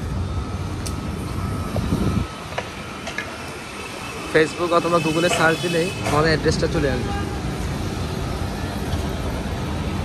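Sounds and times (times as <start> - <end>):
steady street hum: 0.0 - 10.0
street traffic rumble: 0.0 - 10.0.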